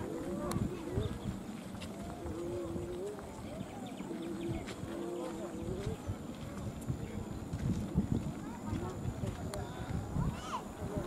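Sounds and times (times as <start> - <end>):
footsteps on dirt track: 0.0 - 11.0
wavering voices of walking group: 0.0 - 11.0.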